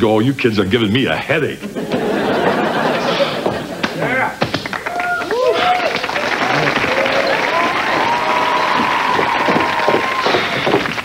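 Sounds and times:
audience applauding and cheering: 4.5 - 11.0.

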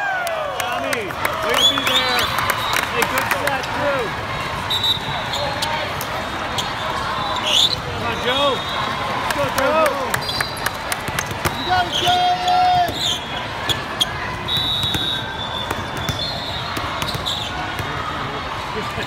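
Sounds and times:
voices chattering: 0.7 - 19.0
sneakers squeaking: 4.5 - 9.0, 10.1 - 18.0
volleyballs bouncing and struck: 9.3 - 18.2.

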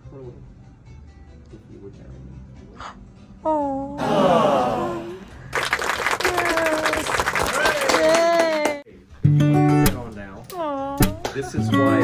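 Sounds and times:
excited voices: 4.0 - 5.5, 6.1 - 8.8
people clapping: 4.0 - 8.9, 11.2 - 11.5
plucked-string music: 9.2 - 12.0.

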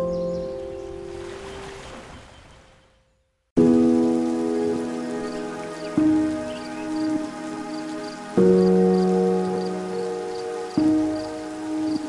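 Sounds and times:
sustained chords music: 3.6 - 12.0.

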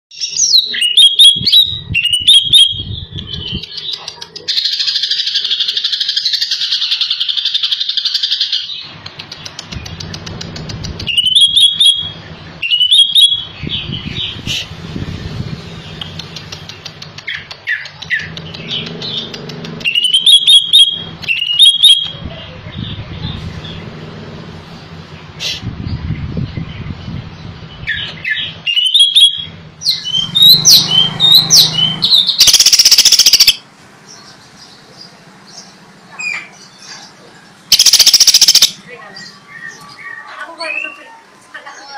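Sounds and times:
bird singing sharp phrases: 0.1 - 24.0, 25.2 - 41.9.

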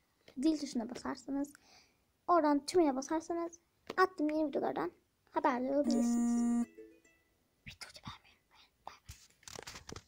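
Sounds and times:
faint whispering: 7.7 - 9.2.

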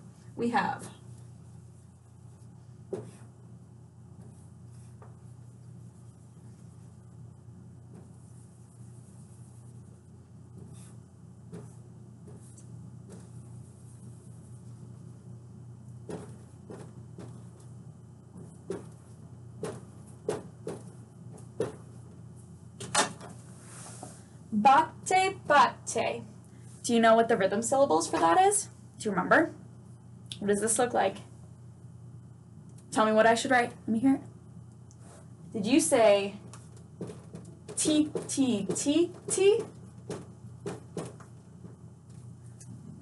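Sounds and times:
low room hum: 0.0 - 43.0
marker drawing on whiteboard: 0.6 - 3.4, 4.1 - 7.1, 7.8 - 15.2, 15.9 - 17.7, 18.4 - 22.1, 35.0 - 42.3
marker knocking on tray: 2.9 - 3.2, 16.0 - 17.5, 18.4 - 19.0, 19.6 - 21.9, 37.0 - 41.8.

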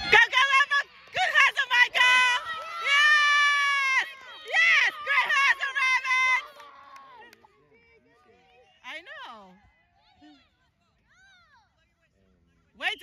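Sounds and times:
spectator shouting and cheering: 0.0 - 7.2.

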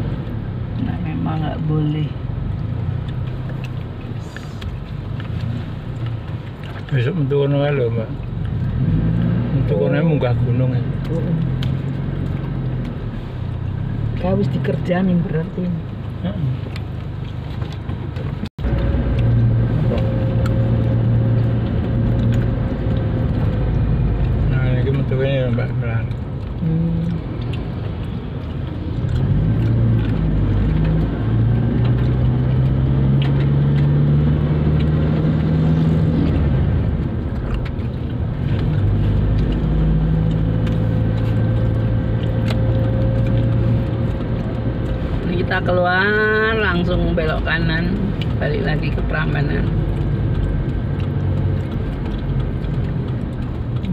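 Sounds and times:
car engine: 0.0 - 53.9
road noise inside car: 0.0 - 53.9.

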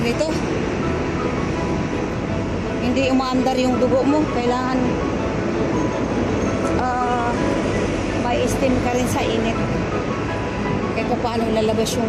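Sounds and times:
bus passing: 0.0 - 12.0
road traffic rumble: 0.0 - 12.0.

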